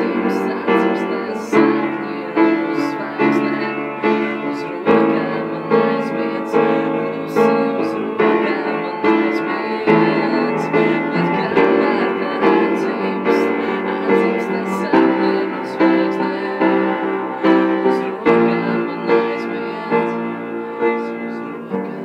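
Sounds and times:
upright piano chords: 0.0s - 22.0s.

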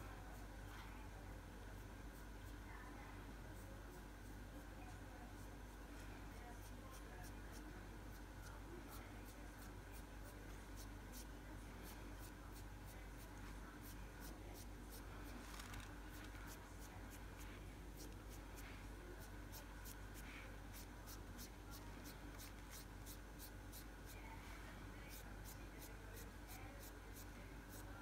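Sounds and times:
low room hum: 0.0s - 28.0s
sponge applicator rubbing on nail: 8.9s - 24.2s.

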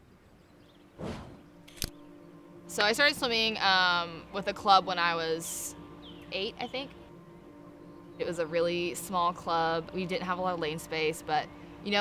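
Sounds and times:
faint steady hum: 0.0s - 12.0s
sharp click: 1.6s - 2.0s.

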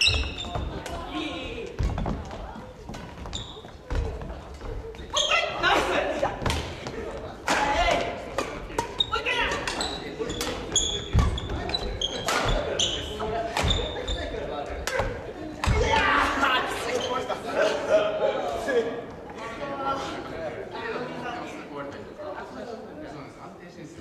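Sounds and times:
shoe squeaks: 0.0s - 0.9s, 3.2s - 5.7s, 8.9s - 14.4s
racket hitting shuttlecock: 6.4s - 12.7s.

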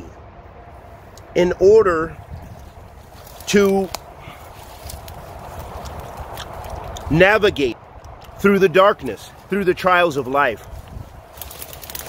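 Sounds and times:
low steady rumble: 0.0s - 12.0s
footsteps through forest brush: 2.2s - 7.1s, 9.0s - 12.0s.

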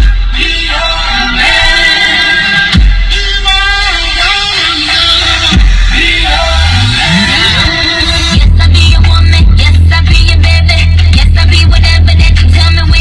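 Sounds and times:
electronic music on car radio: 0.0s - 13.0s.

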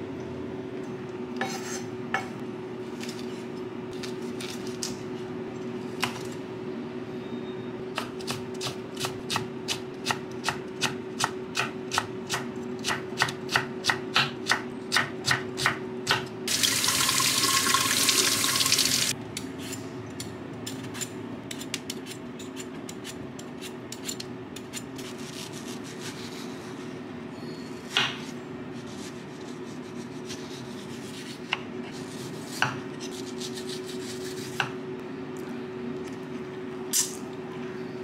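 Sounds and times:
kitchen tap running: 16.5s - 19.1s.

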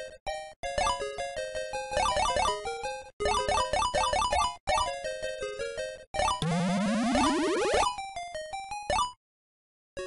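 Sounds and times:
playful background music: 0.0s - 9.2s.

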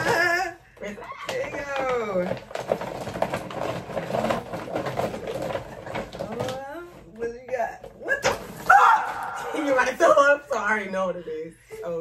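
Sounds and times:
paper gift bag rustling: 1.2s - 7.2s, 8.4s - 10.3s.

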